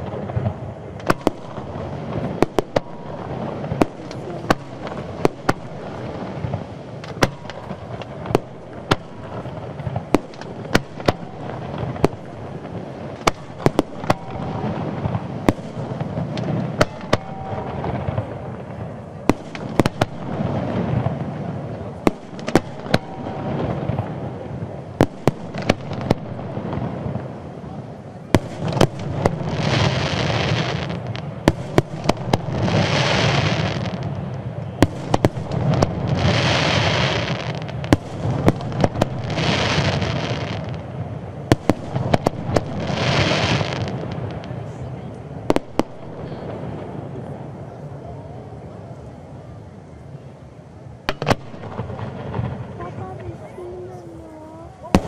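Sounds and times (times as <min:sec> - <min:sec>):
firework shells bursting: 0:00.0 - 0:21.2
hissing crackle: 0:00.0 - 0:55.0.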